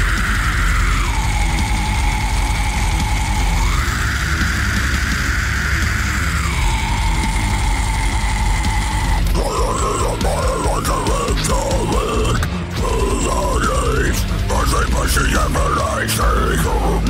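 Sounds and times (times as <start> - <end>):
distorted electric guitars: 0.0 - 17.0
drums: 0.0 - 17.0.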